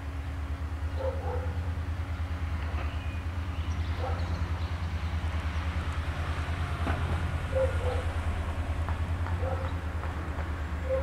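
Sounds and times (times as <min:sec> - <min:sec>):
distant diesel locomotive rumbling: 0:00.0 - 0:11.0.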